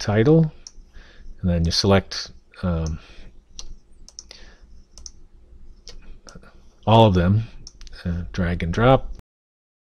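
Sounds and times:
computer mouse clicking: 0:03.6 - 0:04.4, 0:05.0 - 0:05.2, 0:07.6 - 0:08.0.

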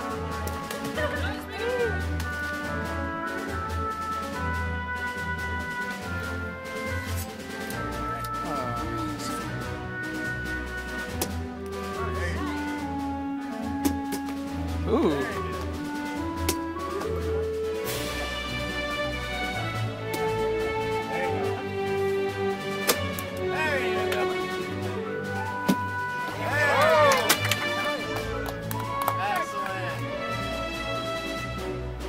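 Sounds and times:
background music sustained tones: 0:00.0 - 0:32.0
held instrumental notes: 0:00.0 - 0:32.0.

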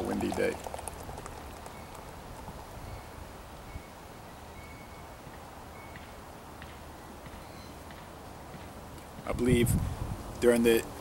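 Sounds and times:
wind rumbling on microphone: 0:00.0 - 0:03.9, 0:09.2 - 0:11.0.

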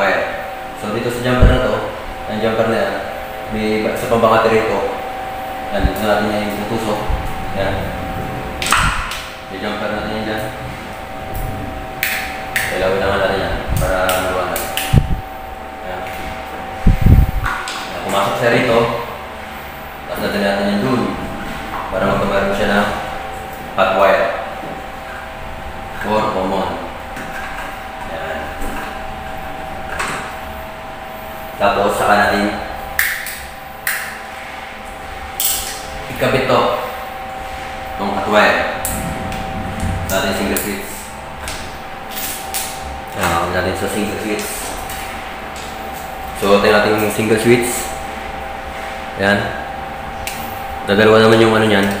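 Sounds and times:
background hum: 0:00.0 - 0:52.0.

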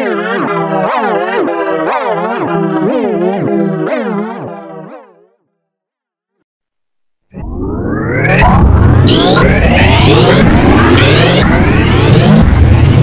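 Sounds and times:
warbling synth tone: 0:00.0 - 0:05.2, 0:07.3 - 0:13.0
noisy processed sound with rising sweeps: 0:07.3 - 0:13.0.

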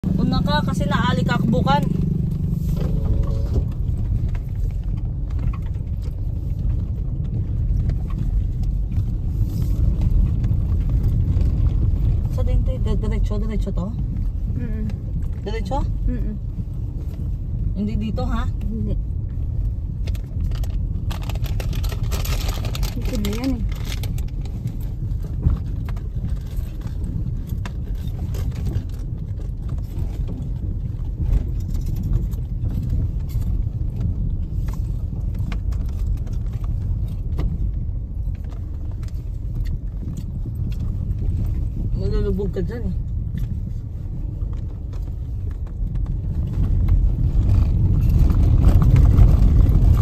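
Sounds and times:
vehicle rumble: 0:00.0 - 0:50.0
wind noise on microphone: 0:00.0 - 0:50.0.

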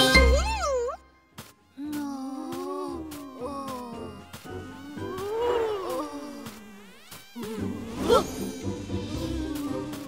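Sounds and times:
cartoon background music: 0:00.0 - 0:10.0
wavering buzzing sound effect: 0:04.3 - 0:10.0.

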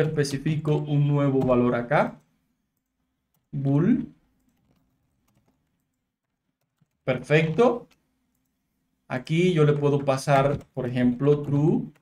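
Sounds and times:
faint keyboard clicks: 0:04.4 - 0:08.5.

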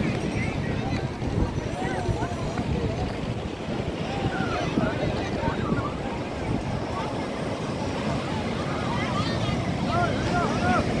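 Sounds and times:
beach crowd chatter: 0:00.0 - 0:11.0
surf breaking: 0:00.0 - 0:11.0
wind on microphone: 0:00.0 - 0:11.0.

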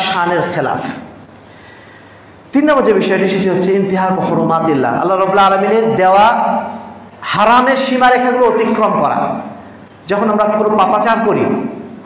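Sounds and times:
man lecturing into headset microphone: 0:00.0 - 0:01.2, 0:02.5 - 0:11.9.

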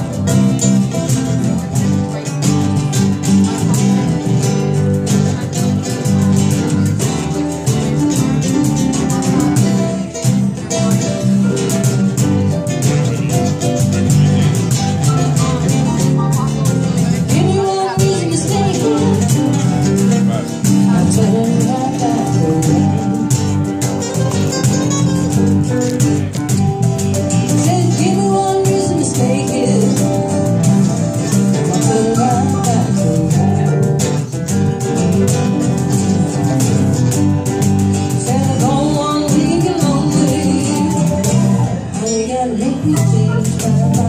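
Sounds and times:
guitars: 0:00.0 - 0:44.0
hand percussion: 0:00.0 - 0:44.0
person singing: 0:13.1 - 0:23.7, 0:27.3 - 0:34.4, 0:38.0 - 0:44.0.

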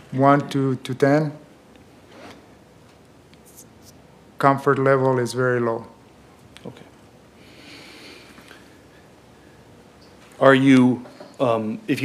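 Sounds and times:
soft breath hiss: 0:00.0 - 0:12.0.

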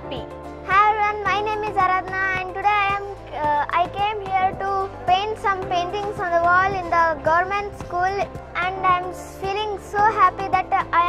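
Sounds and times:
background music with held notes: 0:00.0 - 0:11.0
young girl speaking: 0:00.0 - 0:11.0.

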